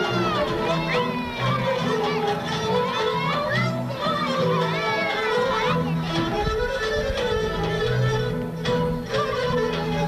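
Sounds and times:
folk music: 0.0s - 10.0s
voices calling and shouting: 0.0s - 10.0s.

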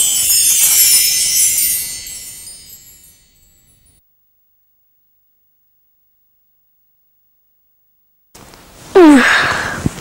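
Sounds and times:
shimmering sparkle sound effect: 0.0s - 4.0s.

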